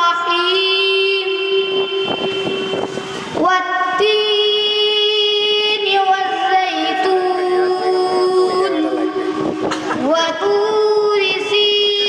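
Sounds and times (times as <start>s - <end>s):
noisy burst: 0.0s - 7.2s, 8.2s - 11.6s
boy chanting through microphone: 0.0s - 12.0s.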